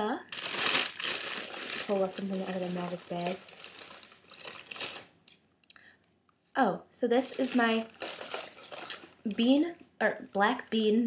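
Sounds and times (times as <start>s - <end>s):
shopping bag rustling: 0.3s - 5.2s, 7.2s - 9.6s.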